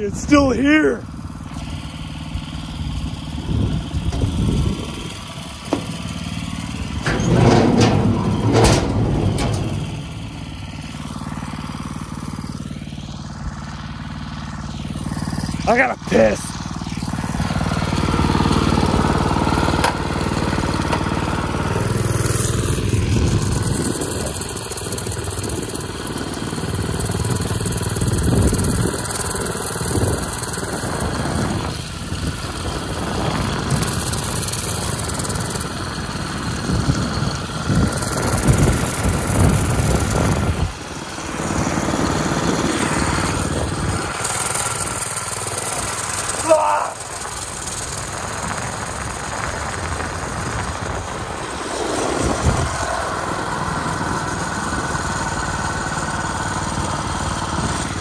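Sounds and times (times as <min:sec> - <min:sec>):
small engine running: 0:00.0 - 0:58.0.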